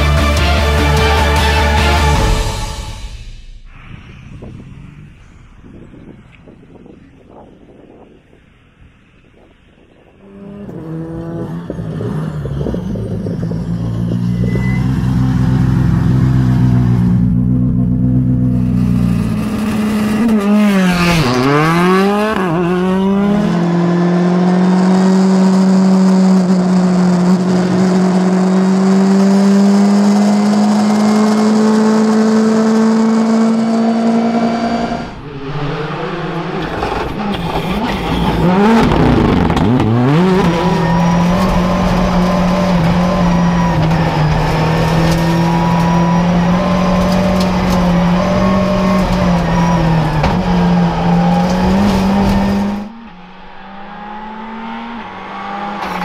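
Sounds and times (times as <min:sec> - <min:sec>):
rally car engine revving: 0:10.2 - 0:56.0.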